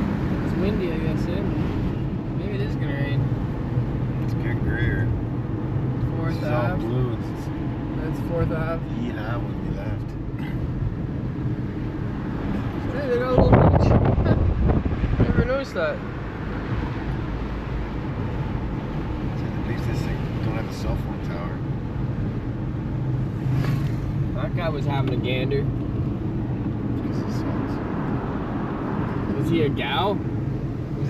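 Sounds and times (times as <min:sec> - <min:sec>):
car road and engine rumble: 0:00.0 - 0:31.0.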